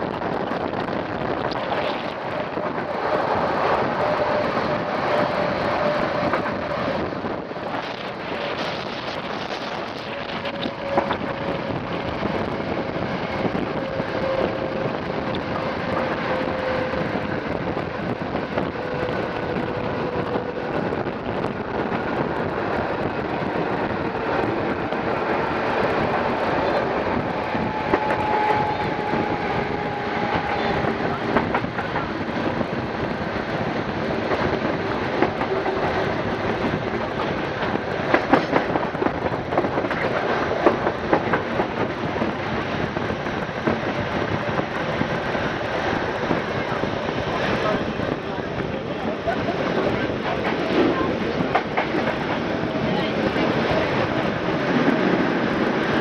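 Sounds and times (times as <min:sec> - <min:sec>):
train wheels on rail: 0:00.0 - 0:56.0
wheels clacking over rail joints: 0:01.4 - 0:44.6, 0:45.2 - 0:56.0.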